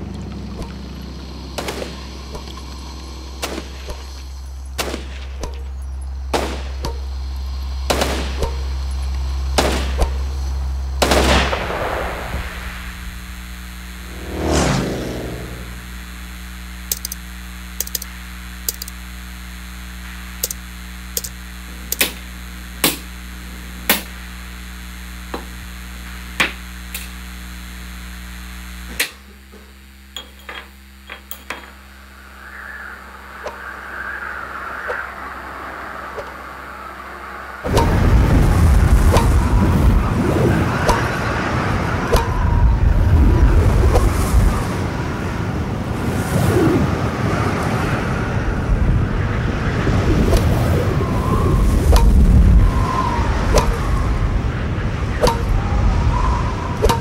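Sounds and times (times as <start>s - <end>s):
low steady hum: 0.0s - 57.0s
whoosh: 14.0s - 15.8s
sharp cracks and clicks: 16.8s - 17.2s, 17.8s - 19.0s, 20.4s - 23.1s.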